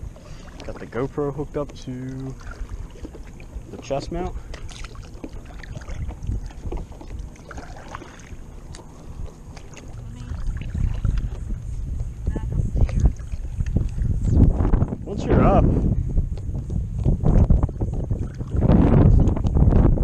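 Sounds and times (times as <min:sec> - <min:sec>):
paddle splashes and drips: 0:00.0 - 0:11.7, 0:12.8 - 0:14.4
wind rumbling on microphone: 0:00.0 - 0:20.0.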